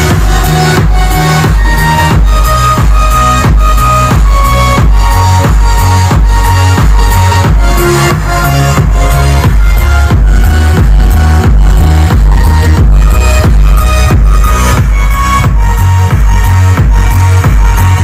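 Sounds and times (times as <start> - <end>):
electronic dance music: 0.0 - 18.0.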